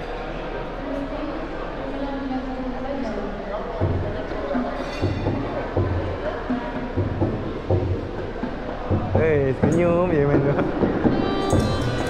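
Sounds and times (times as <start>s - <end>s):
low tabla drum beats: 3.7s - 12.0s
violin: 4.0s - 12.0s.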